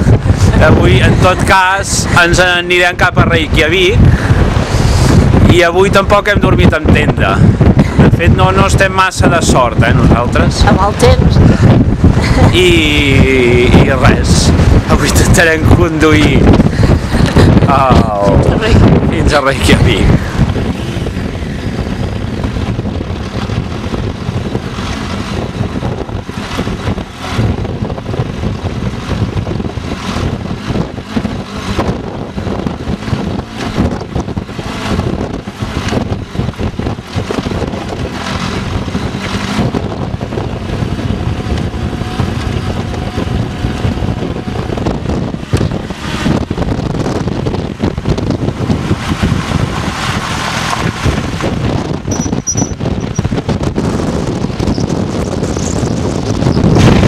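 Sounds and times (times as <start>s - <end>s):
motorcycle engine running: 0.0s - 57.0s
wind buffeting microphone: 0.0s - 57.0s.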